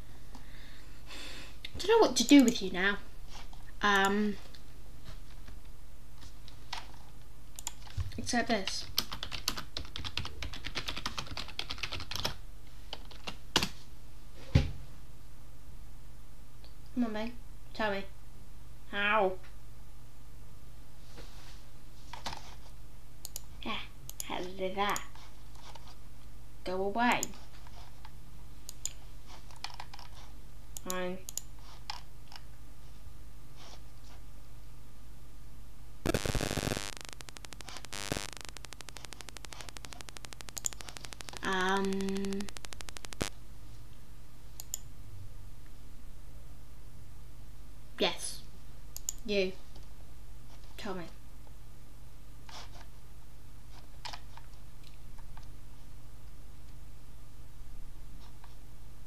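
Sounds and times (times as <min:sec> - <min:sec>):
electrical mains hum: 0:00.0 - 0:59.0
typing on computer keyboard: 0:08.8 - 0:12.4, 0:28.8 - 0:30.1, 0:38.6 - 0:43.3
buzzing static bursts: 0:36.0 - 0:43.4
fast pulsing buzz: 0:36.1 - 0:43.3.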